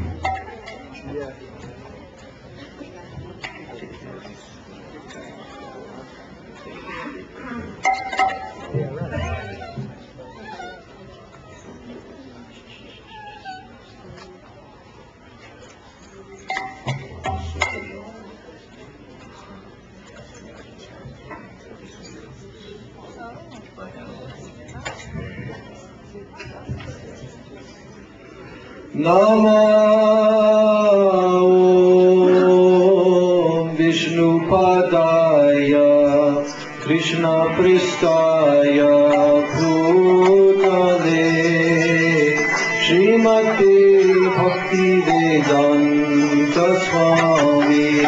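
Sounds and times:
short high-pitched cry: 12.7 - 13.8
man chanting: 29.0 - 48.0.

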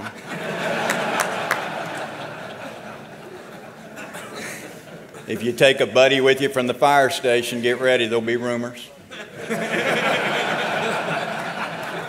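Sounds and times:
audience laughing: 0.0 - 5.6, 9.1 - 12.0.

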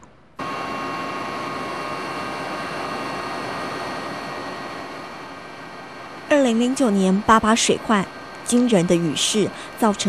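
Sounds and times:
high engine whine: 0.0 - 10.0
aircraft engine rush: 0.4 - 10.0.

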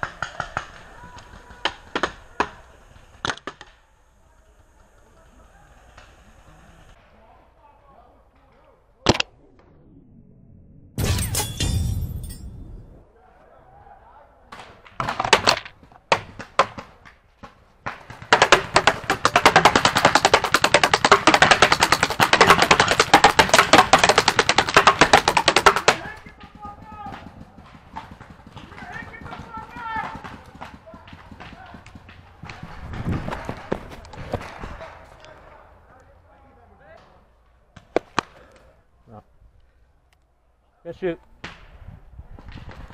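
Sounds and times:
paintball markers firing: 0.0 - 3.8, 14.6 - 34.9.

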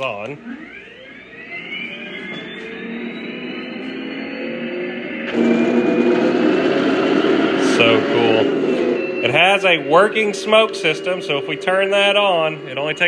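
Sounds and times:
simulated tank engine through speaker: 2.4 - 13.0.

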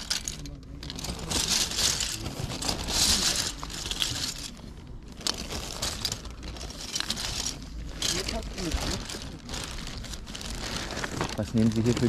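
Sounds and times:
plastic toys clicking together: 0.0 - 4.5
plastic bag crinkling: 0.0 - 12.0.

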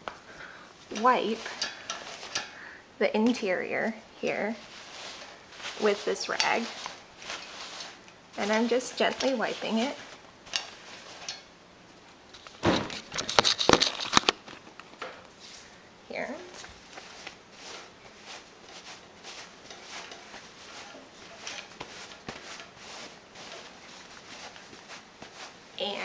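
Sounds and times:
rustling and clatter: 0.8 - 2.6, 4.3 - 11.5, 12.3 - 15.7, 16.5 - 26.0
damp rag rubbing fabric: 4.3 - 10.2, 16.5 - 26.0.

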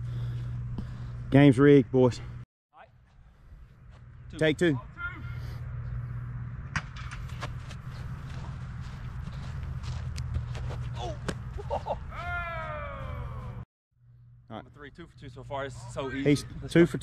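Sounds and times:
low outdoor rumble: 0.0 - 17.0
drawn-out falling shout: 10.9 - 13.6.

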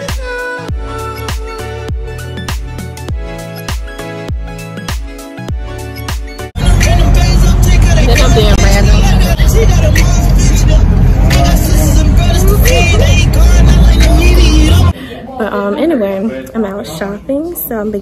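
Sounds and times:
music: 0.0 - 18.0
road rumble: 6.6 - 14.9
woman's voice: 8.0 - 9.8, 15.0 - 18.0.

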